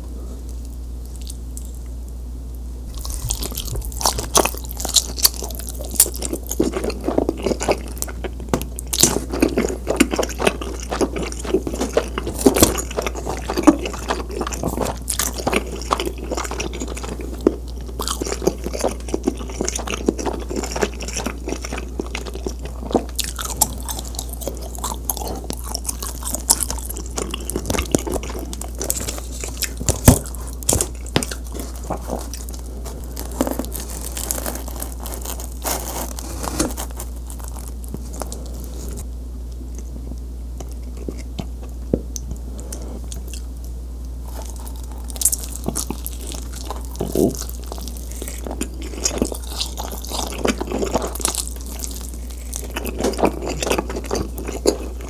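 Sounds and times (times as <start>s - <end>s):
crisp chewing crunches: 2.9s - 39.1s, 40.6s - 55.0s.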